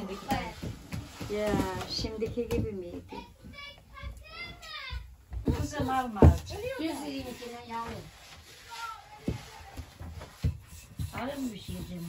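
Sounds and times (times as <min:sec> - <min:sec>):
dough handling with rolling pin: 0:00.0 - 0:12.0
wood knocking on wood: 0:00.2 - 0:07.4.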